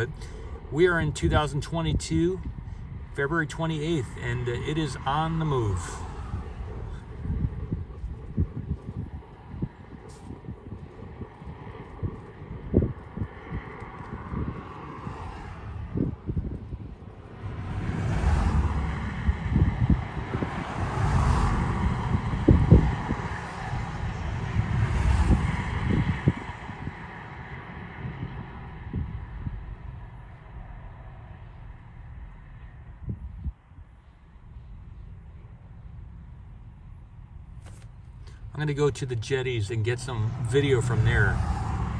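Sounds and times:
road traffic passing: 0.0 - 41.9
wind buffeting microphone: 0.0 - 41.9.

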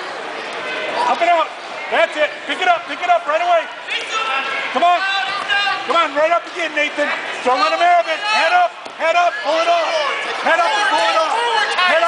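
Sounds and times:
long drawn-out shout: 9.3 - 12.0.

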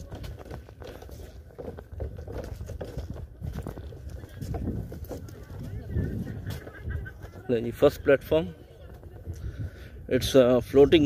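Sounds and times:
footsteps on wooden boardwalk: 0.0 - 11.0
faint voices: 3.2 - 11.0.

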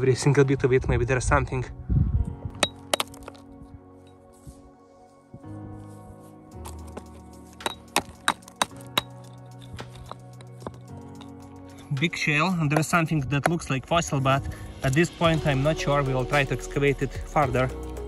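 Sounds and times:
background music: 0.0 - 18.0
hammer cracking rock: 2.6 - 3.4, 7.6 - 9.2.

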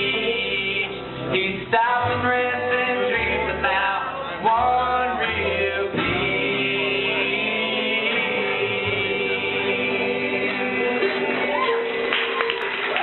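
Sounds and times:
person singing country song: 0.0 - 12.1
steady bass: 0.0 - 12.1
guitar accompaniment: 0.0 - 13.0.

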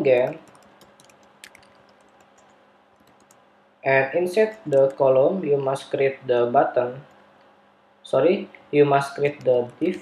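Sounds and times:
computer keyboard typing: 0.0 - 3.4, 4.4 - 5.0, 9.2 - 10.0.

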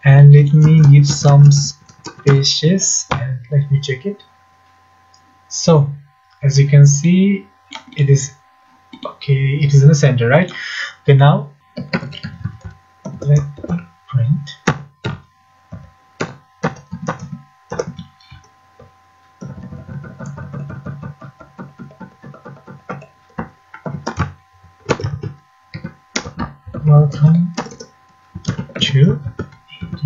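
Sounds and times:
faint steady hum: 0.0 - 30.0
computer keyboard typing: 0.6 - 2.4, 14.7 - 18.5, 19.4 - 30.0.

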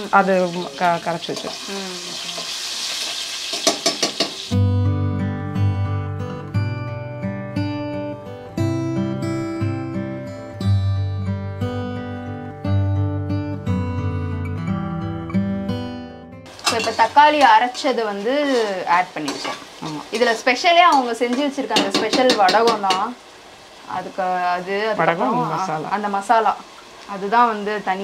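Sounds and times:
food sizzling in a pot: 0.0 - 5.1, 16.5 - 28.0
plucked instrumental music: 4.5 - 18.8.

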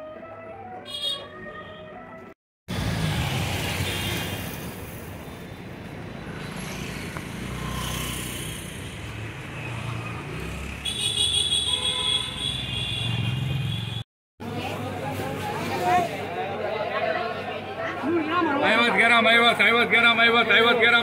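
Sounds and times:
vehicle horn: 0.8 - 2.2, 10.8 - 14.0
car and motorcycle engines passing: 2.7 - 11.7.

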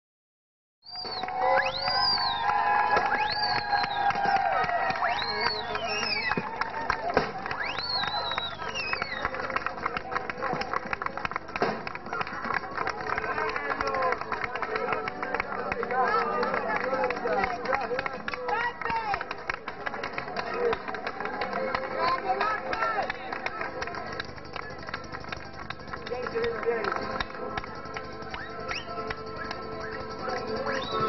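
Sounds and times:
crowd talking and shouting: 0.9 - 31.0.

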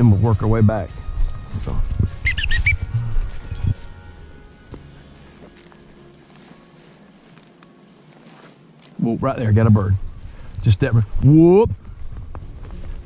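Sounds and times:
footsteps through dry grass: 0.0 - 13.0
microphone rumbling: 0.4 - 3.8, 9.5 - 13.0
faint outdoor hush: 1.1 - 13.0
high chirps: 2.1 - 5.4.

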